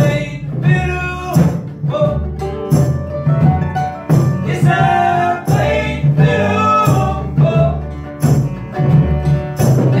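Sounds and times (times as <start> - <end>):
strummed acoustic guitar: 0.0 - 10.0
upright bass: 0.0 - 10.0.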